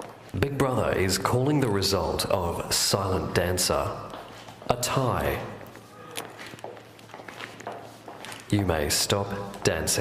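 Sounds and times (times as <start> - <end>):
sneakers shuffling on hard floor: 4.0 - 10.0.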